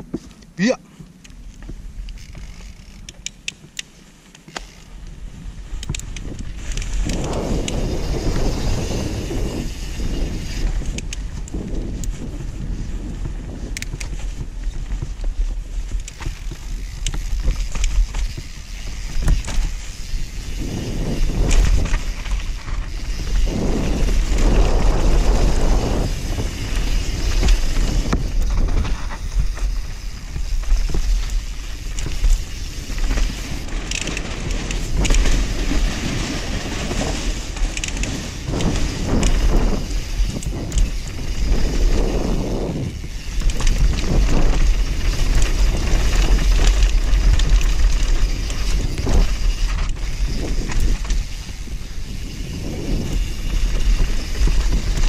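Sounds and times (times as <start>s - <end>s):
bike chain and frame rattling: 1.0s - 55.0s
wind buffeting microphone: 5.1s - 55.0s
tyres rolling over dirt and stones: 5.7s - 55.0s.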